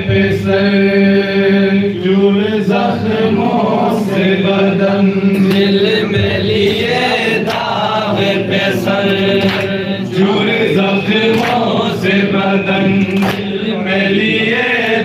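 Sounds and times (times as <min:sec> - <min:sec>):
men chanting in unison: 0:00.0 - 0:15.0.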